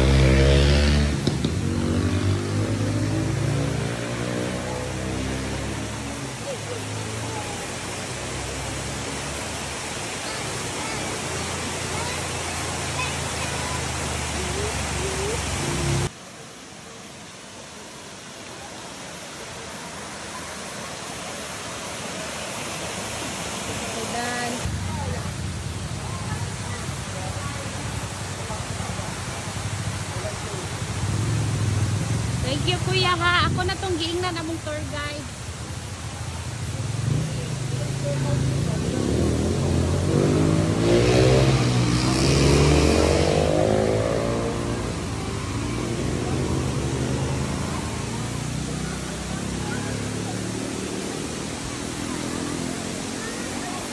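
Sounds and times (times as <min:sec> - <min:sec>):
motorcycle engine passing: 0:00.0 - 0:07.2, 0:24.1 - 0:33.8, 0:36.6 - 0:53.9
waterfall rushing: 0:00.0 - 0:53.9.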